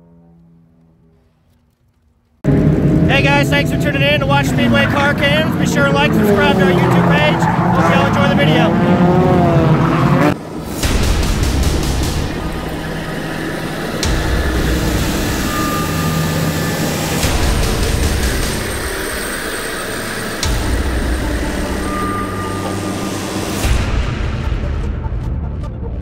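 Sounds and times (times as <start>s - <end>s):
heavy machine engines running: 2.4s - 24.4s.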